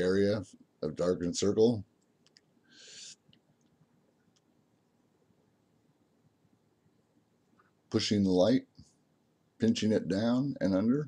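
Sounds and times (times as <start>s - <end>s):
faint clicks: 2.0s - 2.6s, 3.2s - 4.6s.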